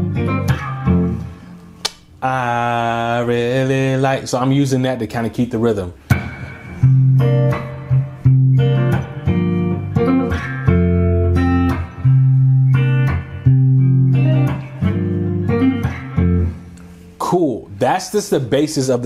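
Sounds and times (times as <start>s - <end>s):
electric guitar fingerstyle: 0.0s - 2.1s, 6.0s - 17.2s
percussive string strikes: 6.1s - 9.3s.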